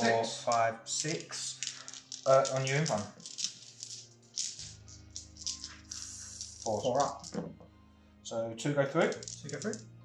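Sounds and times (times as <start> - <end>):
faint background music: 0.0 - 10.0
plastic dice clicking and rattling: 0.5 - 7.5, 9.1 - 9.9.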